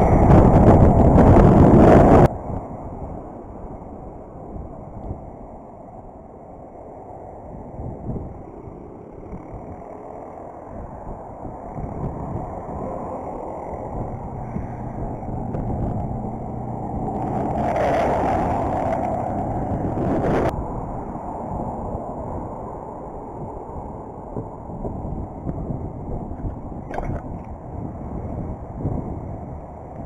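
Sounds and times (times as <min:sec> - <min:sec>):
traffic passing: 0:00.0 - 0:30.0
wind rumble: 0:00.0 - 0:30.0
bike tyres rolling on concrete: 0:08.2 - 0:20.6.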